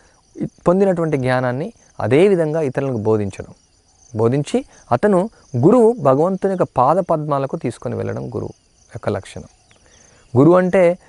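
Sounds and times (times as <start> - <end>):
man lecturing: 10.4 - 11.0.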